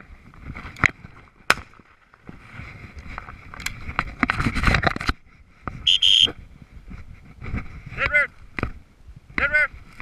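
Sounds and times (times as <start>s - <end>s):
footsteps crunching through dry brush: 0.2s - 4.6s
brief high-pitched call: 5.9s - 6.3s
dog whistle blast: 5.9s - 6.3s.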